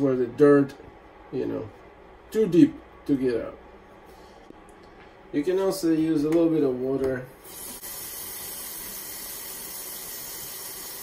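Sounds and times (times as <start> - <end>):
faucet water running: 7.4 - 11.0.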